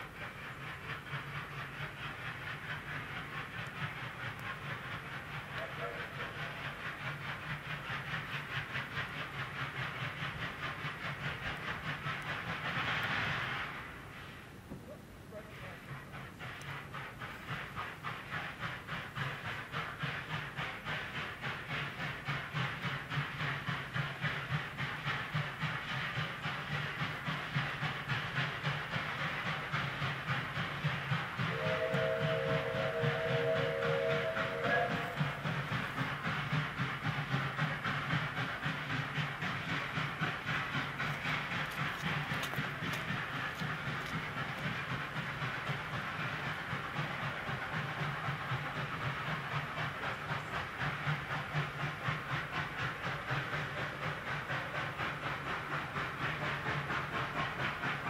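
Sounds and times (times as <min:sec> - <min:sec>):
steam locomotive exhaust beating: 0:00.0 - 0:58.0
chime steam whistle: 0:31.4 - 0:35.7.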